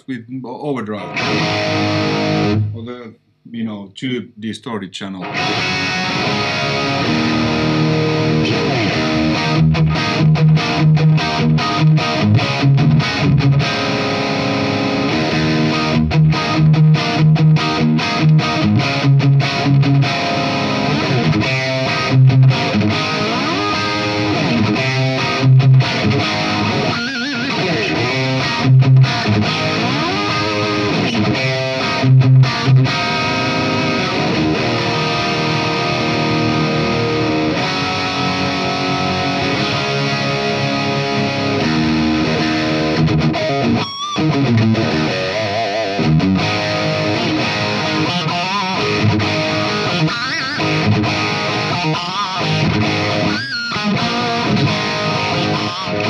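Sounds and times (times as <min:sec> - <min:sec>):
distorted electric guitar: 0:00.9 - 0:03.1, 0:05.2 - 0:56.0.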